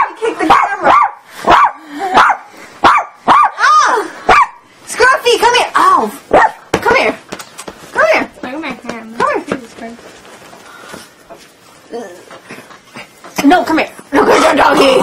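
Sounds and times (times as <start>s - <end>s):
dog barking and yipping: 0.0s - 4.7s, 6.3s - 6.7s.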